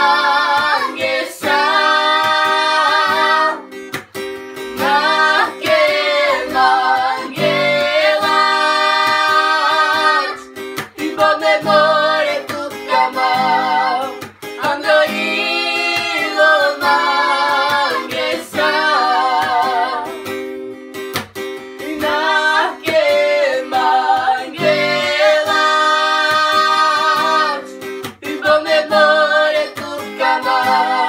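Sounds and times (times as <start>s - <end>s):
woman singing: 0.0s - 3.7s, 4.7s - 20.3s, 21.8s - 31.0s
acoustic guitar: 0.0s - 31.0s.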